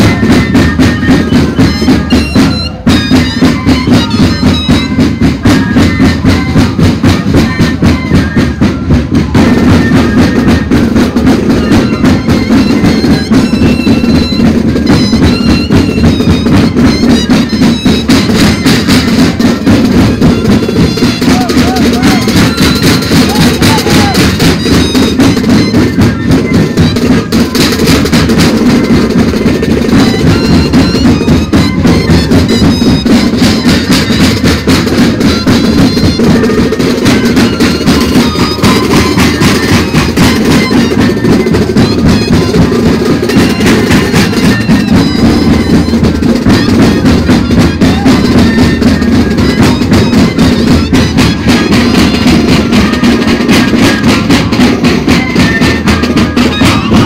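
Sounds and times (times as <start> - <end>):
bass drums and snare drums: 0.0 - 57.0
cane flutes playing melody: 0.0 - 57.0.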